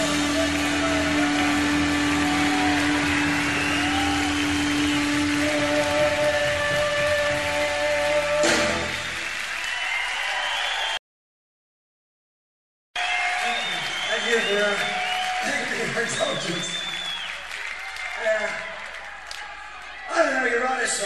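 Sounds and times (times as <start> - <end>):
cymbal crash: 0.0 - 6.7
distorted electric guitar: 0.0 - 9.2
crowd noise: 0.0 - 11.0, 13.0 - 21.0.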